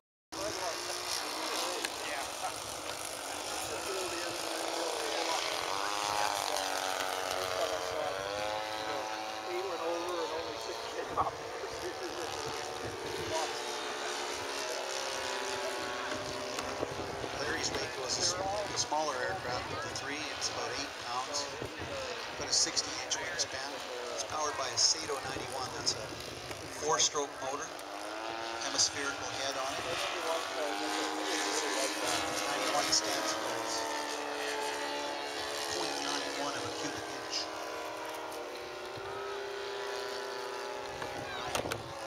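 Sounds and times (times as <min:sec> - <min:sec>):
model airplane engine running: 0:00.4 - 0:42.0.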